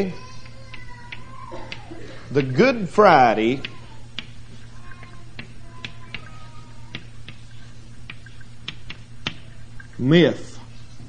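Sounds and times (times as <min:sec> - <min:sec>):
low mains hum: 0:00.0 - 0:11.0.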